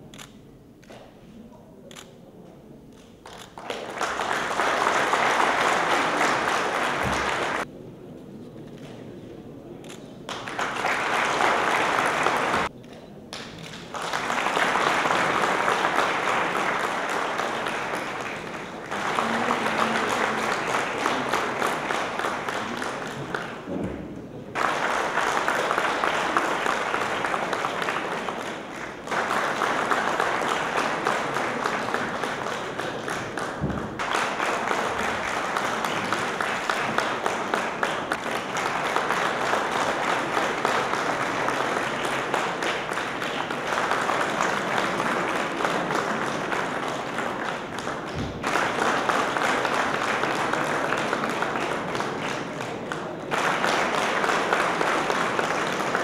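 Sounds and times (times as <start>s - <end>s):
audience applauding: 3.2s - 7.7s, 10.3s - 12.7s, 13.3s - 23.8s, 24.5s - 56.0s.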